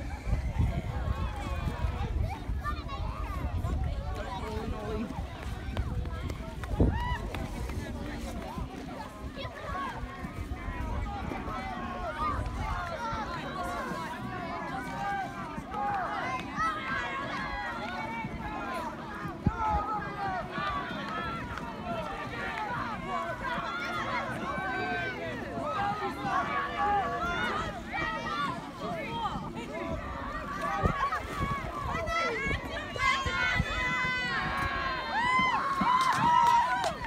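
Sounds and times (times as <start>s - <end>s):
voices shouting and calling: 0.0s - 37.0s.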